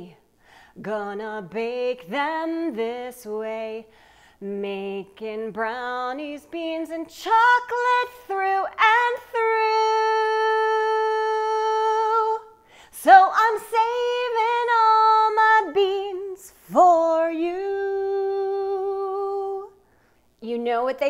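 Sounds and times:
woman singing a cappella: 0:00.0 - 0:21.0.

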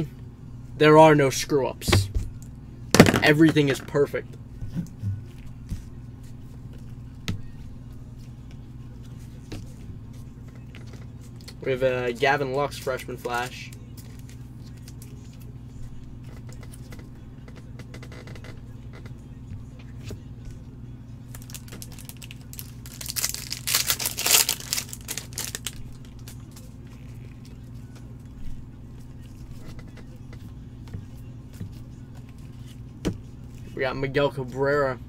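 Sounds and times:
steady low hum: 0:00.0 - 0:35.0
foil wrapper tearing and crinkling: 0:21.3 - 0:26.8.

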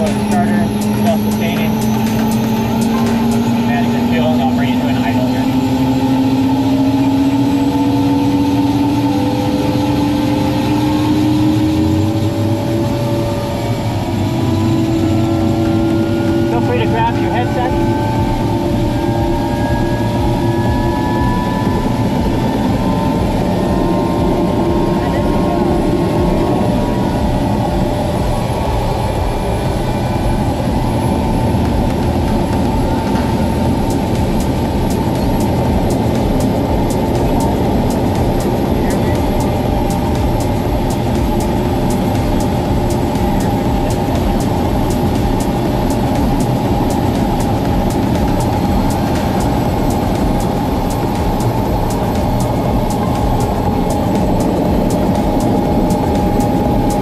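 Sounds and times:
helicopter engine and rotor drone: 0:00.0 - 0:57.0.

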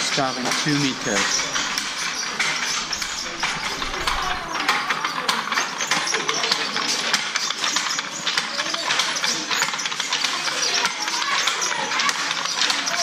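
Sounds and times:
wooden looms clattering: 0:00.0 - 0:13.0.

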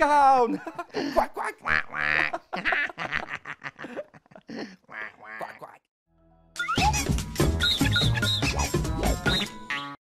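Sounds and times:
man laughing: 0:00.4 - 0:05.7.

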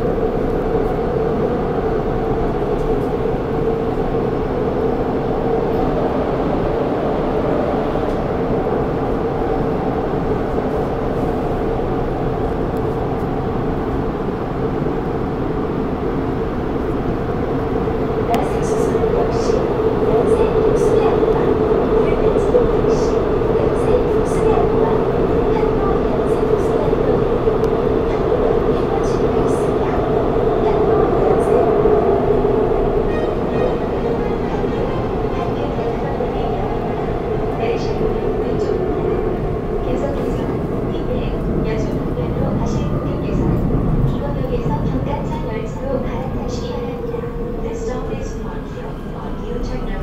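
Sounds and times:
subway car rumble and hum: 0:00.0 - 0:50.0.

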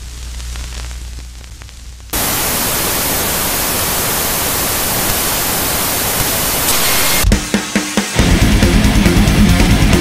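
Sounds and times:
low hum with faint crackles: 0:00.0 - 0:06.6
tv static hiss: 0:00.0 - 0:08.2.

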